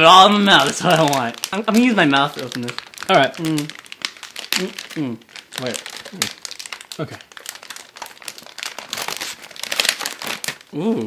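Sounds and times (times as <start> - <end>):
snack wrapper crinkling: 0.0 - 10.8.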